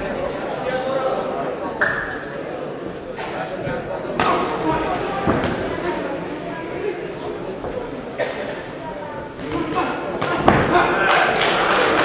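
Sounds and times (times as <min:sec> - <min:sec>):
spectators' voices echoing: 0:00.0 - 0:12.0.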